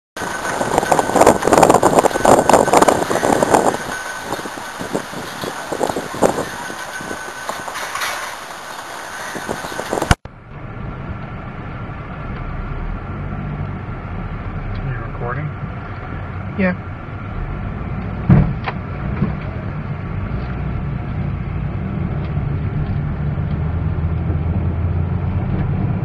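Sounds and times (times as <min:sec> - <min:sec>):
flag flapping: 0:00.2 - 0:10.2
car engine and road hum: 0:00.2 - 0:26.0
gusty wind: 0:00.2 - 0:26.0.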